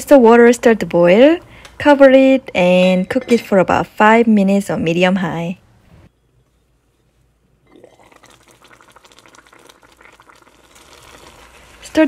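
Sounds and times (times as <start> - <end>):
pot boiling with crackling bubbles: 7.6 - 12.0.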